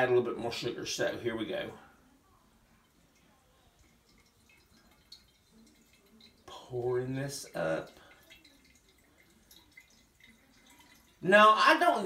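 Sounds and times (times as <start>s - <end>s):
liquid trickling into a bottle: 2.7s - 12.0s.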